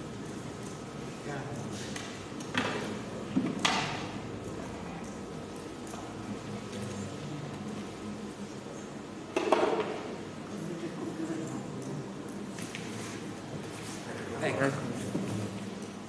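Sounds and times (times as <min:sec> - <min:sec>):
knocks and clatters on a desk: 0:01.8 - 0:04.2, 0:09.3 - 0:10.1.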